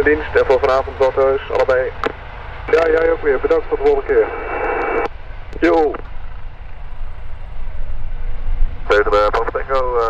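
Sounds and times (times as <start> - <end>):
helicopter rotor rumble: 0.0 - 10.0.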